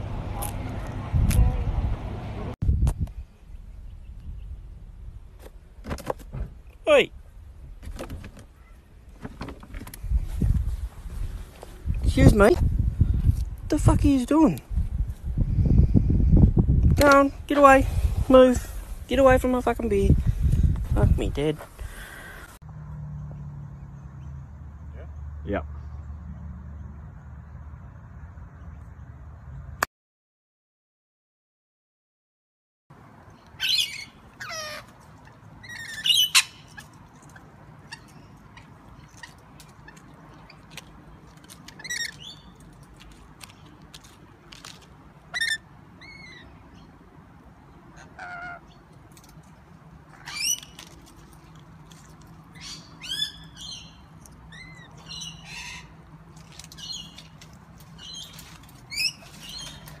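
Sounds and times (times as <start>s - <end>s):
lorikeets squawking: 33.6s - 40.7s, 41.7s - 42.6s, 45.3s - 46.9s, 47.9s - 48.8s, 50.1s - 50.8s, 52.6s - 56.0s, 58.0s - 60.0s.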